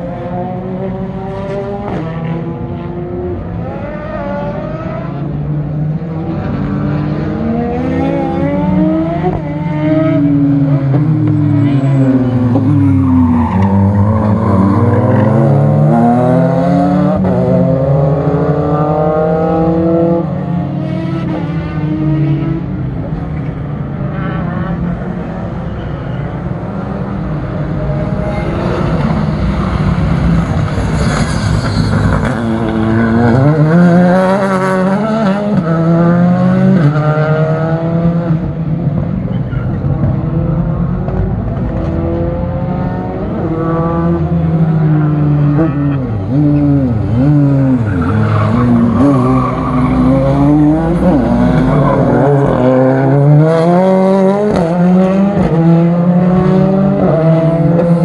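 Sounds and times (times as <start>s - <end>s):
racing car engines: 0.0s - 58.0s.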